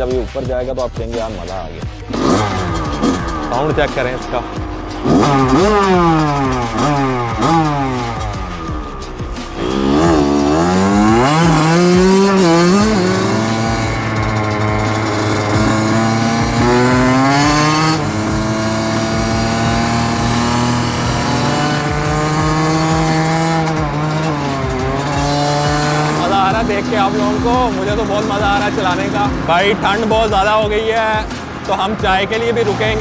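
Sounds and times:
dirt bike engine revving: 1.8s - 33.0s.

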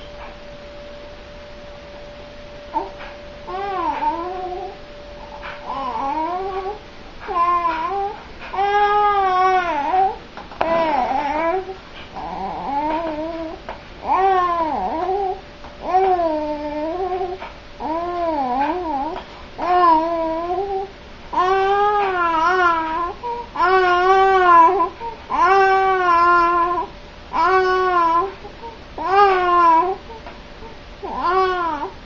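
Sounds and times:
faint high hum: 0.0s - 32.0s
baby cooing: 2.7s - 4.8s, 5.4s - 30.3s, 31.0s - 32.0s.

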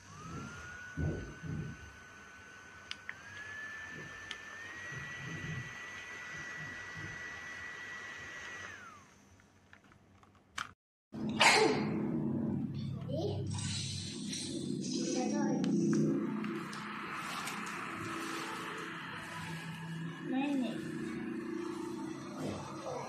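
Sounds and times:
small fan motor whining: 0.0s - 9.4s, 14.1s - 23.0s.

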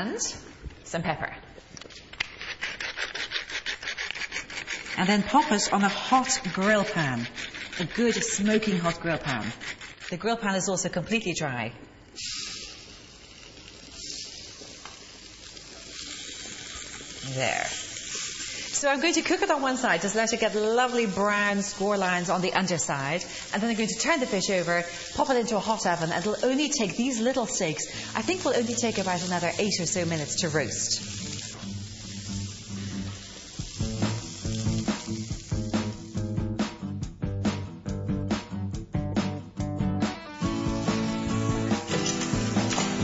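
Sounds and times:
fish sizzling on grill pan: 12.1s - 36.6s.

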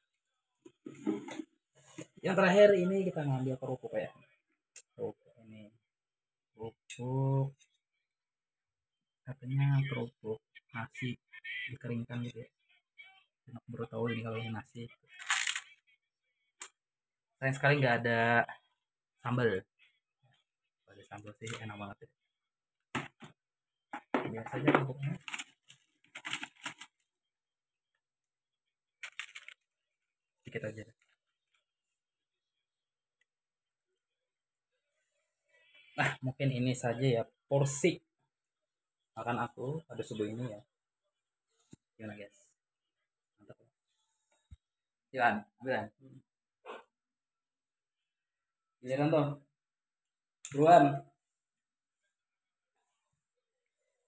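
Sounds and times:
plastic containers and utensils clattering: 0.7s - 1.5s.

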